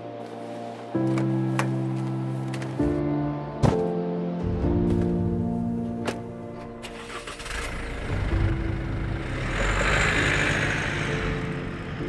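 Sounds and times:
quiet background music: 0.0s - 12.0s
pickup engine rumbling: 6.9s - 12.0s.

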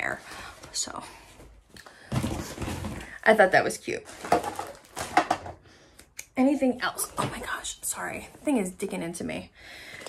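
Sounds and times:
packaged items rustling on desk: 0.0s - 5.6s.

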